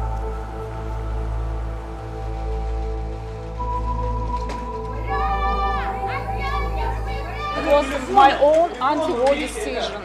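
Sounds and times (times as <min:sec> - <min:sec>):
music of held notes and drone: 0:00.0 - 0:10.0
people talking and calling out: 0:04.4 - 0:10.0.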